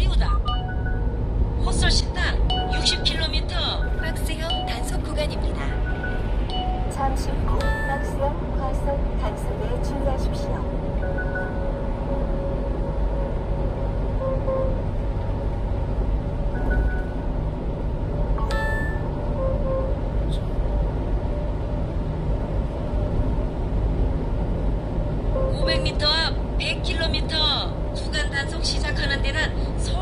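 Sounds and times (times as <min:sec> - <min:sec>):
truck engine and tyres rumble: 0:00.0 - 0:30.0
electronic chime: 0:00.4 - 0:01.1, 0:05.7 - 0:08.2, 0:18.4 - 0:19.1.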